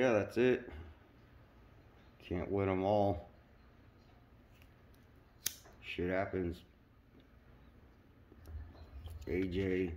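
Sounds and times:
person speaking: 8.9s - 9.9s.

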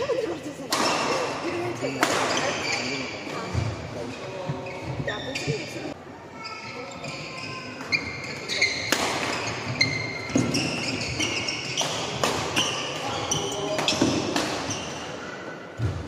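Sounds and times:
shoes squeaking on floor: 2.2s - 15.9s.

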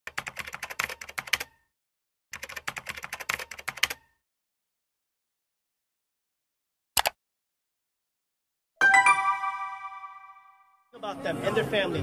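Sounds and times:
rapid keyboard typing clicks: 0.1s - 1.6s, 2.4s - 4.1s.

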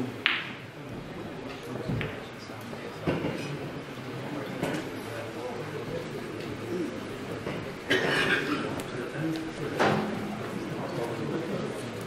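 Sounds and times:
snooker ball knocking: 0.2s - 0.6s.

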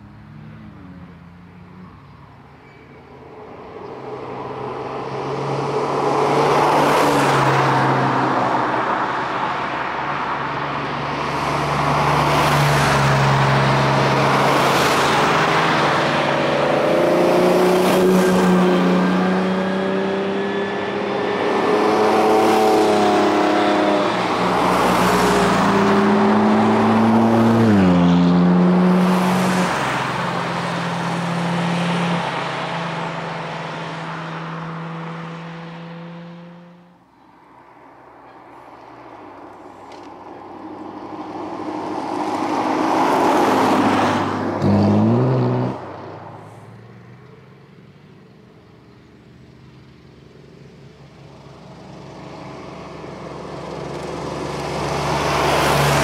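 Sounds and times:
cars driving past: 0.0s - 56.0s.

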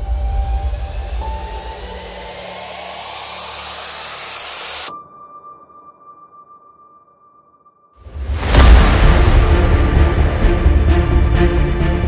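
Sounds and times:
rising whoosh: 0.0s - 5.0s
steady held tone: 0.0s - 5.4s.

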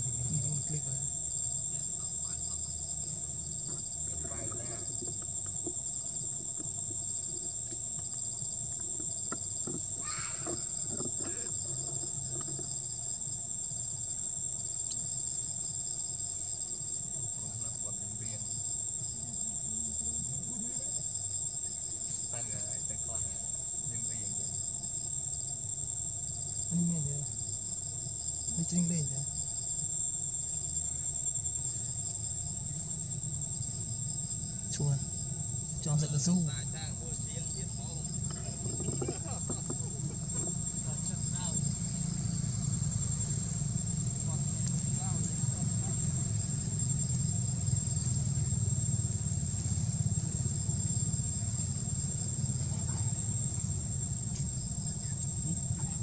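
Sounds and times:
insect high-pitched whine: 0.0s - 56.0s
insect pulsing trill: 0.0s - 56.0s.

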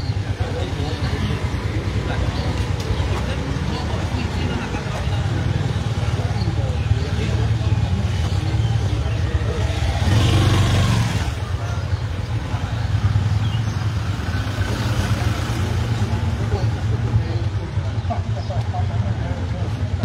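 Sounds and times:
vehicle engine humming: 0.0s - 20.0s.

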